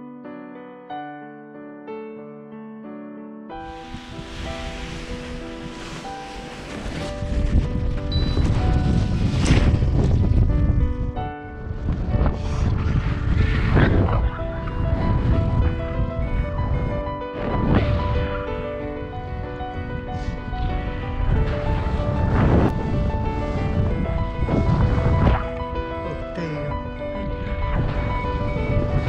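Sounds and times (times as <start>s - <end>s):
soft piano music: 0.0s - 29.0s
wind buffeting microphone: 3.6s - 29.0s.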